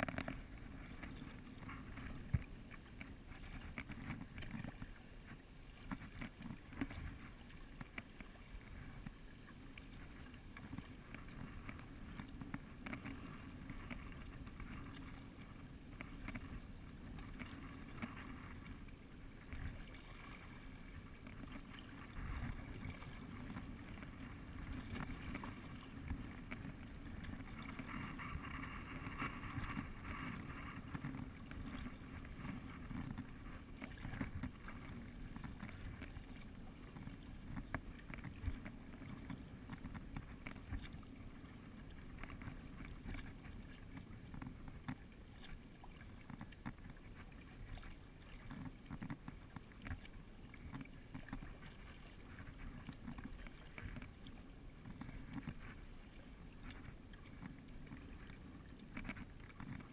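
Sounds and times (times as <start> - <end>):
wind rumble on microphone: 0.0 - 9.2, 10.0 - 59.9
kayak paddle strokes: 0.0 - 59.9
water splashing and lapping: 0.0 - 59.9.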